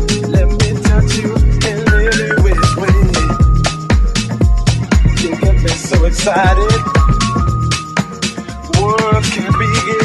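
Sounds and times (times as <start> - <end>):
pitch-bending melodic line: 0.0 - 4.2
hi-hats: 0.0 - 10.0
kick-drum beat: 0.0 - 10.0.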